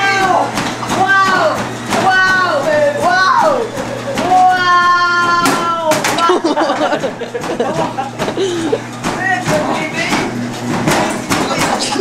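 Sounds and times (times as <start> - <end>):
knocks and thumps on treadmill: 0.0 - 12.0
treadmill motor hum: 0.0 - 12.0
voices shouting and laughing: 2.0 - 9.4.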